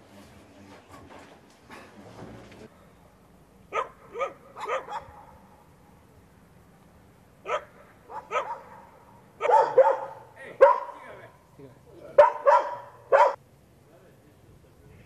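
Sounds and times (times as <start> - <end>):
dog barking: 3.7 - 5.4, 7.4 - 11.1, 12.2 - 13.4.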